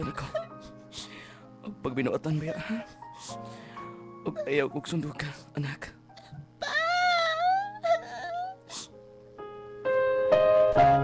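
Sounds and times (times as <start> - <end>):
person wailing in anguish: 6.6 - 8.7.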